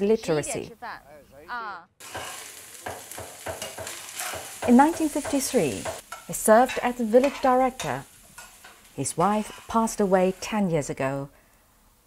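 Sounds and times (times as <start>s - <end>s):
spatula scraping on pan: 2.0s - 10.7s
food sizzling in a wok: 2.0s - 12.0s.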